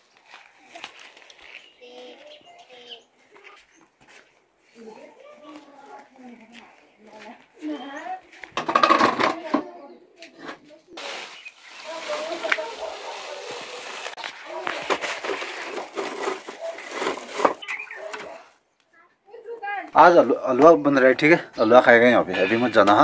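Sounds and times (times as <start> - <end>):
dry grass and twigs rustling: 0.0 - 8.6, 11.0 - 18.5
people talking: 1.8 - 3.7, 4.8 - 11.2, 11.8 - 15.0.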